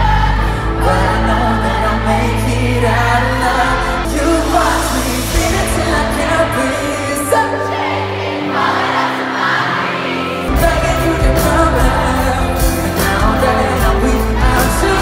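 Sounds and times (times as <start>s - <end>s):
man singing: 0.0s - 7.7s, 10.5s - 15.0s
crowd noise: 0.0s - 15.0s
live pop band: 0.0s - 15.0s.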